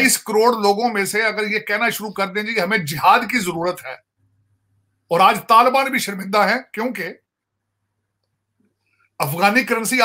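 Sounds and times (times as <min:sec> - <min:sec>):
man speaking: 0:00.0 - 0:04.0, 0:05.1 - 0:07.2, 0:09.2 - 0:10.0
faint low electrical hum: 0:00.0 - 0:10.0.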